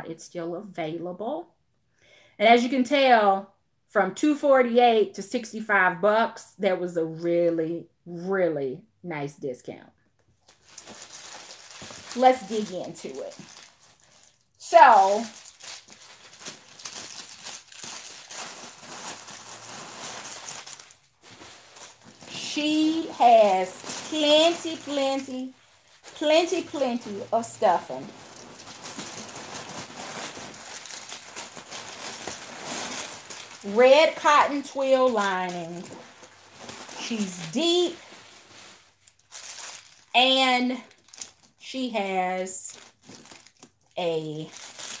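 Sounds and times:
plastic wrapping crinkling: 10.4s - 41.6s, 42.4s - 45.0s.

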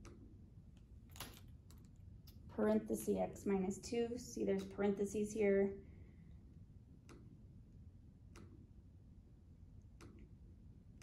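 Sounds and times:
keys clicking: 1.1s - 2.4s.

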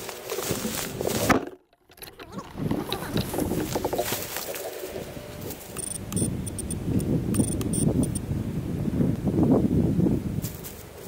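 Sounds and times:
tree branches rustling and knocking: 0.0s - 5.8s.

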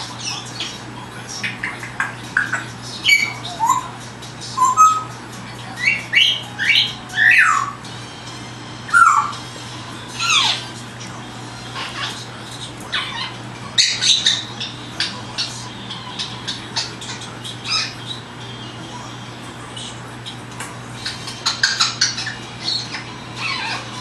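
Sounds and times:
parrot whistling and chirping: 1.4s - 5.2s, 5.8s - 7.9s, 8.8s - 9.5s, 10.2s - 10.7s, 12.9s - 18.9s, 21.0s - 24.0s.

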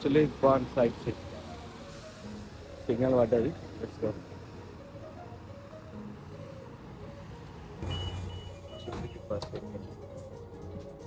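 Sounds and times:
faint street noise: 0.0s - 11.0s
soft background music: 0.0s - 11.0s.

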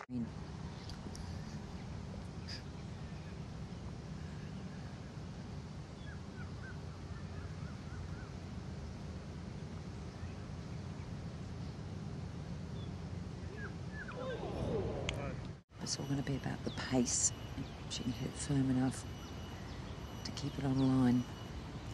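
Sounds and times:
bird chirping: 12.7s - 21.9s.

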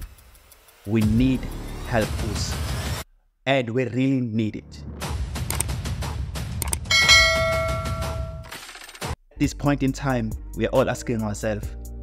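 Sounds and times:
bright bell ding: 6.9s - 8.5s.

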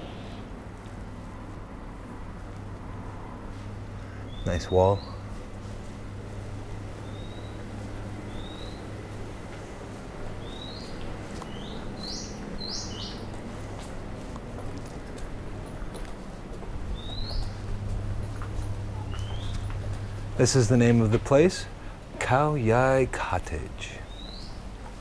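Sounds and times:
steady low hum: 0.0s - 25.0s
bird chirps: 7.0s - 7.6s, 8.3s - 8.9s, 10.4s - 13.3s, 17.0s - 17.6s, 19.0s - 19.7s, 24.1s - 24.6s.

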